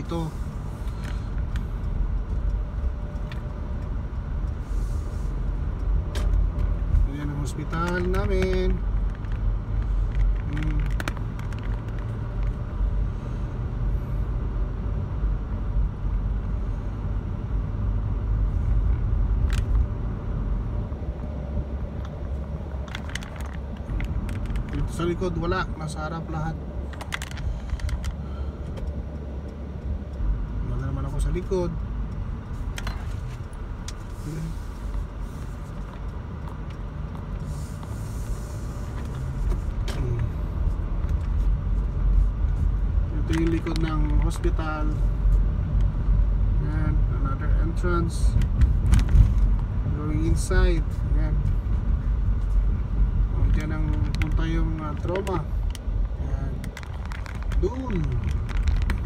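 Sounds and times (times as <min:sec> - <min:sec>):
car interior engine and tyre noise: 0:00.0 - 0:59.0.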